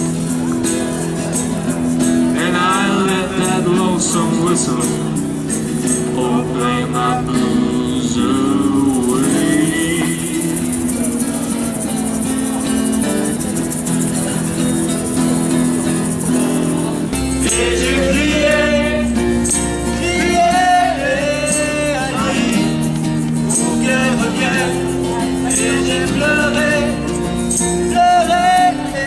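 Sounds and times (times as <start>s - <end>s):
acoustic guitar strumming: 0.0s - 29.0s
percussive beat: 0.0s - 29.0s
man singing into a microphone: 2.3s - 12.7s, 16.5s - 29.0s.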